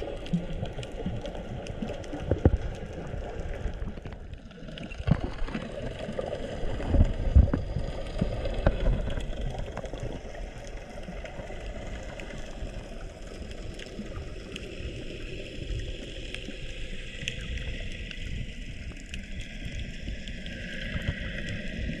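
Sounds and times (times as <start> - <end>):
muffled water sloshing: 0.0 - 14.6.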